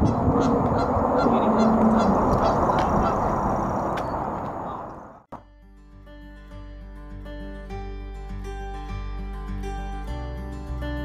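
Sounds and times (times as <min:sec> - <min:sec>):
geese honking: 0:00.0 - 0:05.0.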